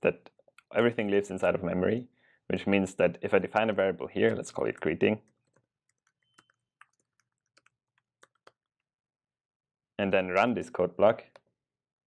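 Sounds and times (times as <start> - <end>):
typing on computer keyboard: 4.3 - 8.6.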